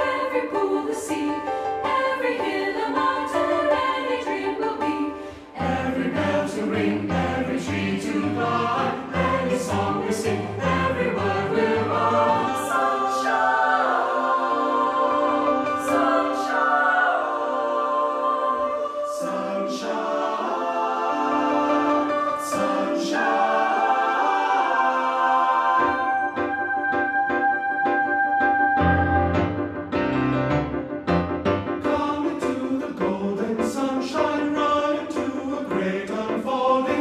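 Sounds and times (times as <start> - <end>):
choir singing in harmony: 0.0 - 37.0
piano chords: 0.0 - 37.0.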